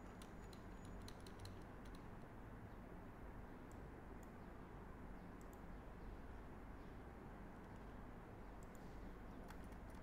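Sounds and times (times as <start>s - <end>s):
faint keyboard keystrokes: 0.2s - 2.1s, 9.4s - 10.0s.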